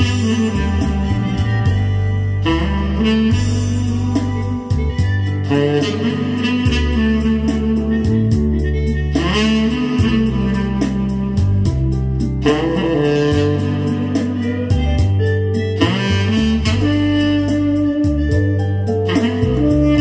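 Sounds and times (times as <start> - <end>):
backing track with bass and beat: 0.0 - 20.0
tenor saxophone ballad melody: 0.0 - 20.0.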